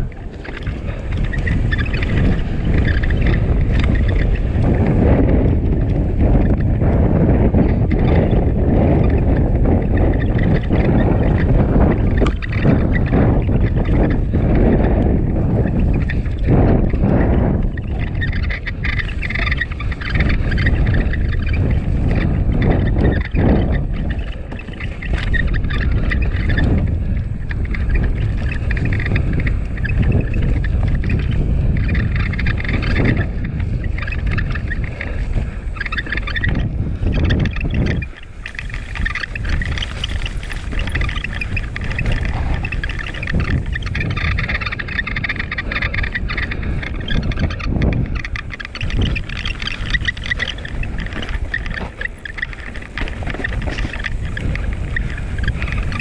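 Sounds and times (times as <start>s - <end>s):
bike tyres rumbling on trail: 0.0s - 56.0s
camera mount rattling squeak: 35.8s - 56.0s.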